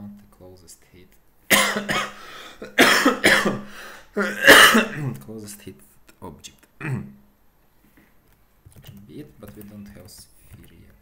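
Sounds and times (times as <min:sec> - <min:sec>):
man coughing: 0:01.5 - 0:05.2, 0:06.8 - 0:07.1.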